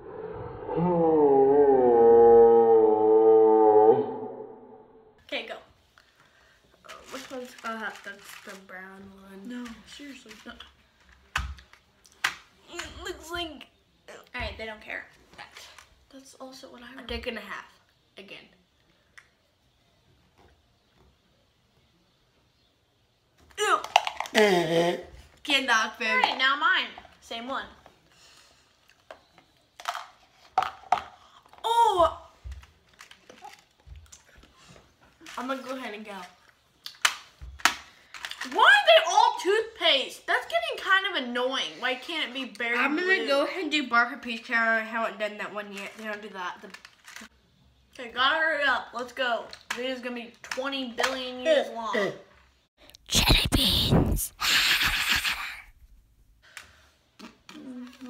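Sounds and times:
person spitting: 24.3 - 25.1, 53.1 - 55.8
retching mouth sounds: 52.9 - 55.9.

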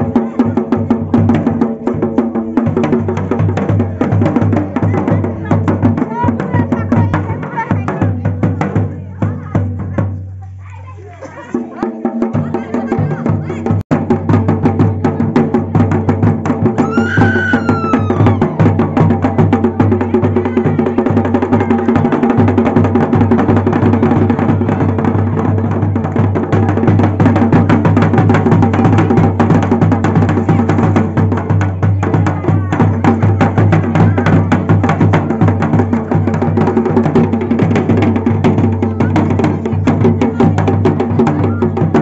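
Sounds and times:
barrel drum beaten fast: 0.0 - 10.3, 11.5 - 42.0.

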